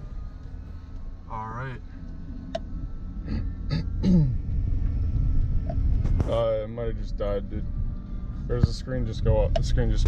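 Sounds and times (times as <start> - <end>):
pickup engine rumble: 0.0 - 10.0.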